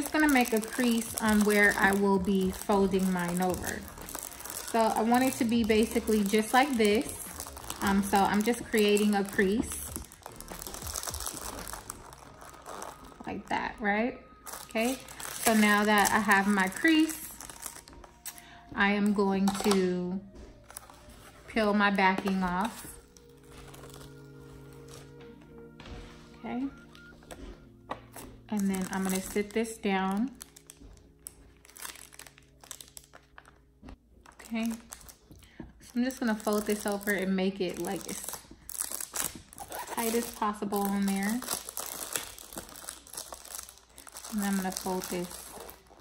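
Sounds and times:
paper and wrapper crinkling: 0.0 - 19.8, 20.4 - 46.0.

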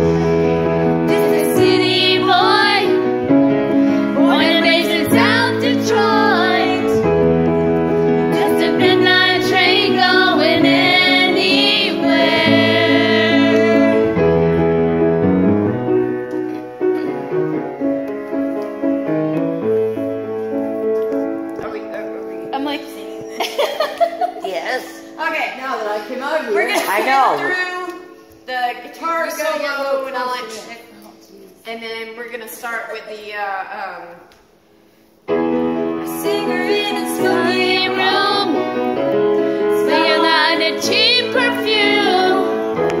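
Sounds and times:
piano chords and notes: 0.0 - 28.4, 35.2 - 43.0
woman singing: 4.2 - 7.0, 36.1 - 38.6.

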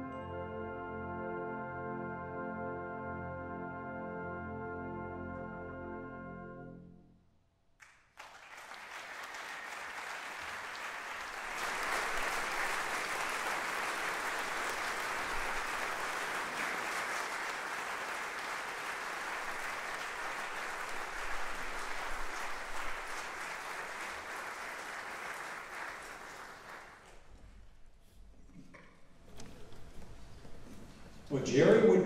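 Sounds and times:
audience applauding: 7.8 - 27.3.

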